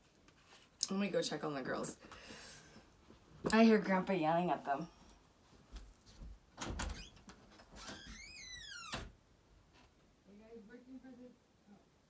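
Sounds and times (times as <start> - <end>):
door hinge creaking: 6.6 - 9.2.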